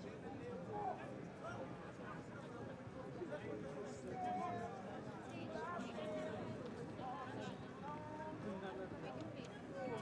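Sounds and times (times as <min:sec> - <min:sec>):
people talking in background: 0:00.7 - 0:10.0.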